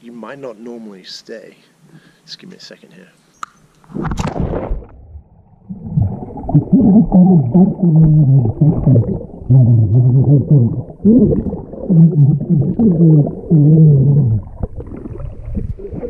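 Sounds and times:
air bubbling: 3.8 - 16.0
churning water: 4.7 - 16.0.

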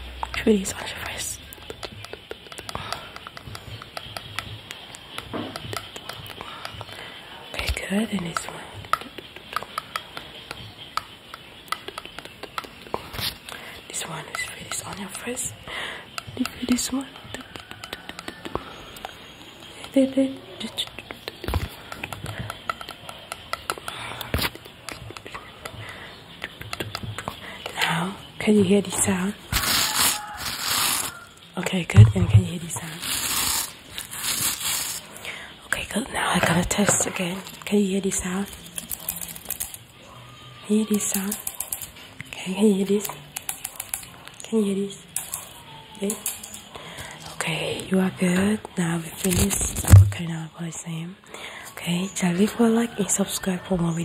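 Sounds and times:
tool clicks and taps: 1.6 - 7.0, 21.1 - 25.8
soft thumps: 31.9 - 32.8, 49.8 - 50.2.

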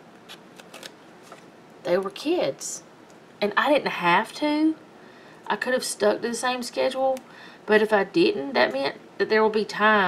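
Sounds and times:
paper rustling: 0.3 - 1.5.

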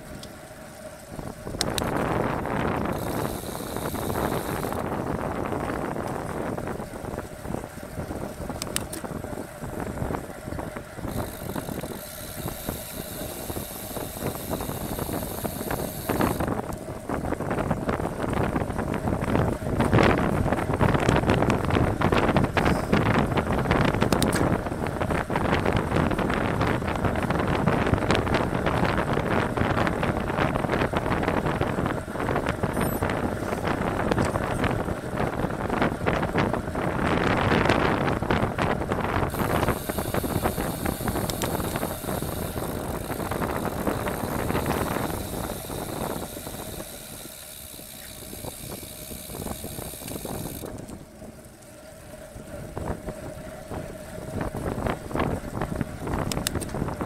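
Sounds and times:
bicycle tyre noise: 0.0 - 57.0
wind rush on microphone: 0.0 - 57.0
freewheel ratchet buzzing: 1.6 - 5.8, 11.0 - 16.8, 39.2 - 50.9.

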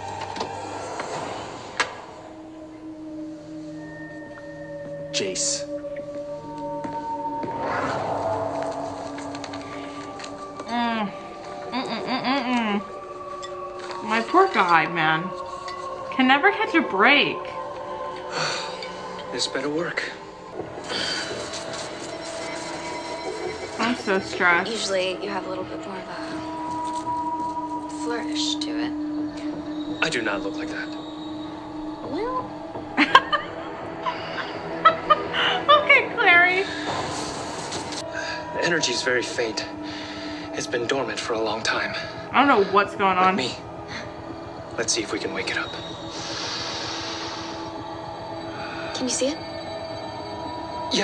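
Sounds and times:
droning hum of held tones: 0.0 - 37.1, 37.7 - 51.0
rushing hiss sound effect: 46.1 - 47.7.

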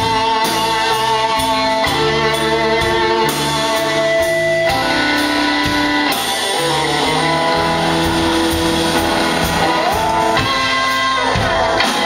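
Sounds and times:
drums: 0.0 - 12.0
electric guitar sustained notes: 0.0 - 12.0
live blues band playing: 0.0 - 12.0.

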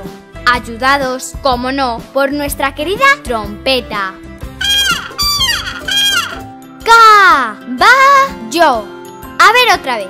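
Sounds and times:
background music: 0.0 - 10.0
trumpet falling notes: 4.6 - 6.5.

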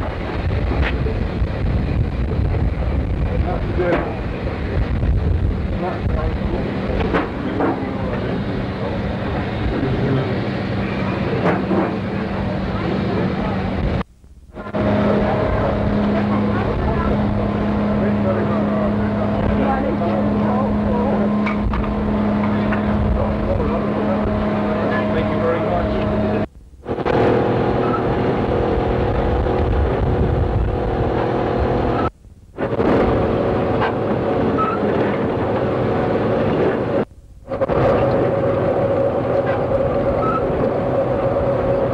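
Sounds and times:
indistinct voices: 0.0 - 30.3
machinery hum: 0.0 - 41.9.

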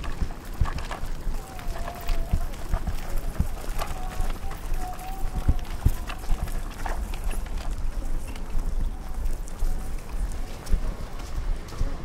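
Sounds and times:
faint voices: 0.0 - 12.0
footsteps on hard path: 0.0 - 12.0.

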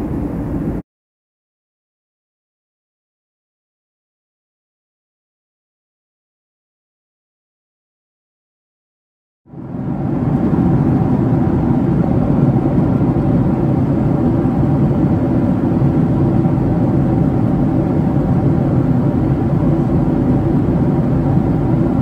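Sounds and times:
airflow and engine rush: 0.0 - 0.8, 9.5 - 22.0
faint hum: 0.0 - 0.8, 9.5 - 22.0.

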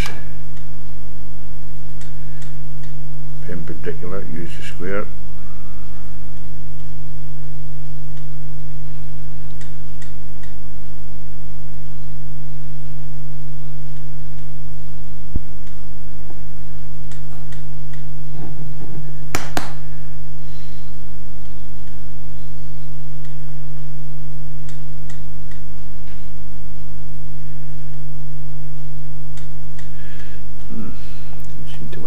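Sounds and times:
loud electrical mains hum: 0.0 - 32.0.

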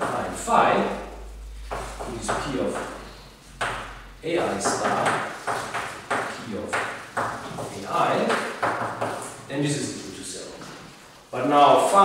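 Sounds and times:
chalk writing on blackboard: 1.7 - 3.0, 3.6 - 9.4.

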